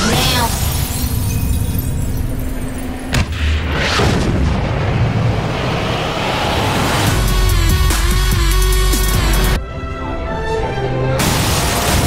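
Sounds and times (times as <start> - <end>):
trailer music hit with ticking: 11.2 - 12.0.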